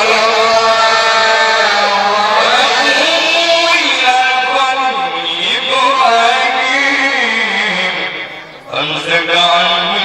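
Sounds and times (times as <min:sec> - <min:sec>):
man chanting through microphone: 0:00.0 - 0:10.0.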